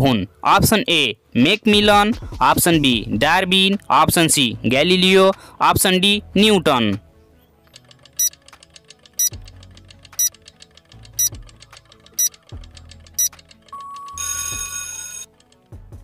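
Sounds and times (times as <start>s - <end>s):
clock-like ticking: 8.0s - 14.3s
alarm bell ringing: 13.8s - 15.3s.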